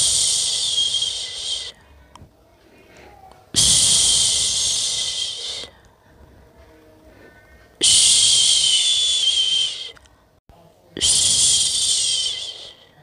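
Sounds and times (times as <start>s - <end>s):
person shushing: 3.0s - 5.8s, 7.8s - 10.0s, 11.0s - 13.0s.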